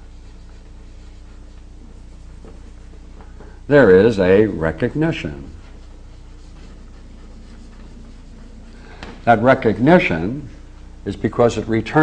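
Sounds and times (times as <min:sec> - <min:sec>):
chalk scratching on blackboard: 0:00.0 - 0:03.1, 0:04.1 - 0:09.8
steady low hum: 0:00.0 - 0:12.0.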